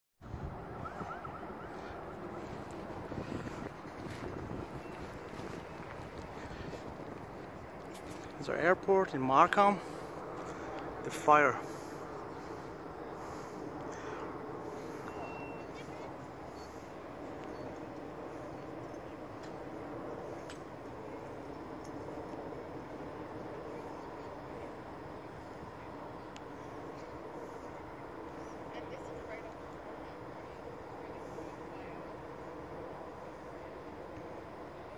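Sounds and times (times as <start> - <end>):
wind buffeting microphone: 0.2 - 9.0
low outdoor rumble: 0.2 - 34.9.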